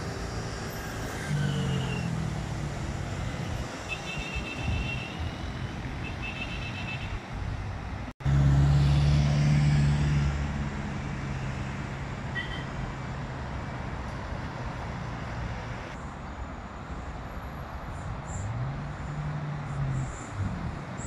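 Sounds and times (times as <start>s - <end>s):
loud close engine hum: 8.2s - 16.0s.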